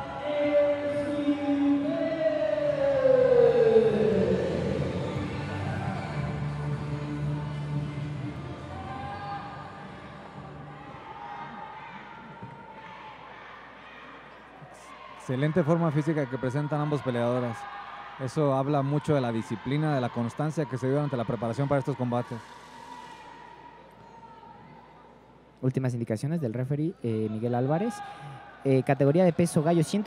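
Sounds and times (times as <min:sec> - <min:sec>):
music: 0:00.0 - 0:11.7
crowd noise: 0:00.0 - 0:30.0.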